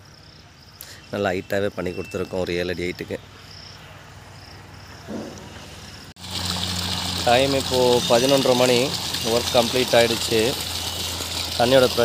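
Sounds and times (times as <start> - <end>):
insects chirping: 0.0 - 6.2
steady outdoor hiss: 0.0 - 12.0.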